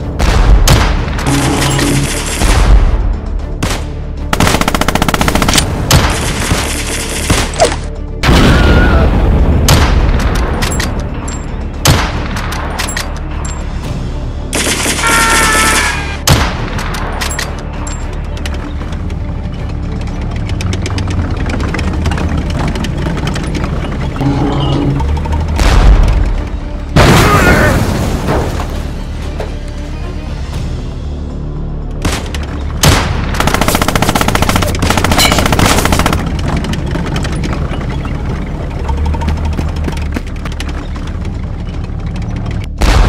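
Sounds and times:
tank engine rumble: 0:00.0 - 0:43.0
rapid track clatter: 0:18.2 - 0:24.2, 0:33.4 - 0:42.6
machine-gun burst: 0:33.4 - 0:36.3.

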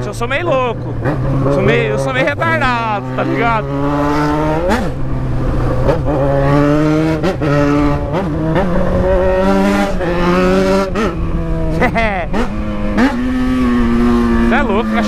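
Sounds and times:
motorcycle engine revving: 0:00.0 - 0:15.0.

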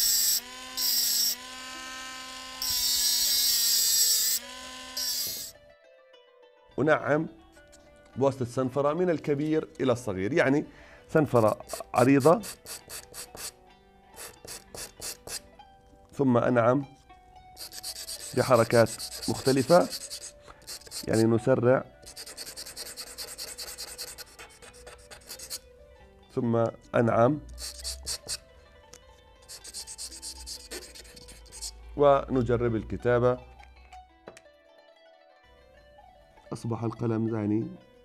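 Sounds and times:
pen nib scratching on sandpaper: 0:05.0 - 0:05.5, 0:11.3 - 0:13.6, 0:14.2 - 0:15.4, 0:17.6 - 0:21.3, 0:22.0 - 0:25.6, 0:27.5 - 0:28.4, 0:29.4 - 0:31.8.

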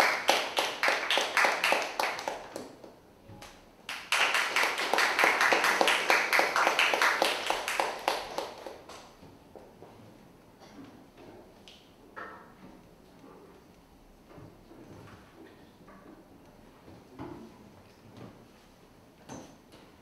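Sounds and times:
audience applauding: 0:00.0 - 0:02.7, 0:03.9 - 0:08.9.

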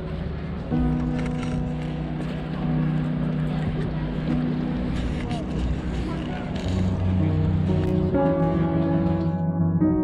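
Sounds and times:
calm music with long low notes: 0:00.0 - 0:10.0
street noise: 0:00.0 - 0:10.0
people talking: 0:02.2 - 0:07.3.

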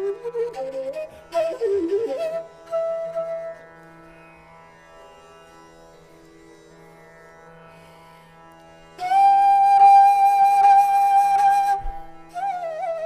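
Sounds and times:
bamboo flute long breathy note: 0:00.0 - 0:03.6, 0:09.0 - 0:13.0.

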